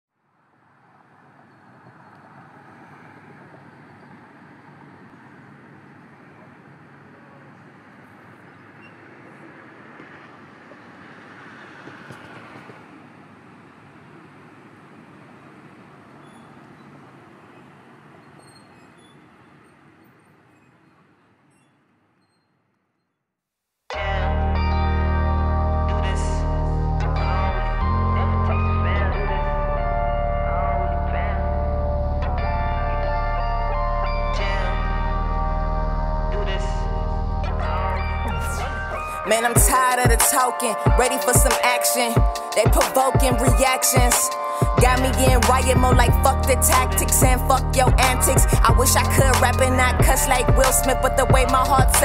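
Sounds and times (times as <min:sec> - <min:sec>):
vehicle rumble: 0:00.2 - 0:22.4, 0:23.9 - 0:40.1, 0:44.8 - 0:52.0.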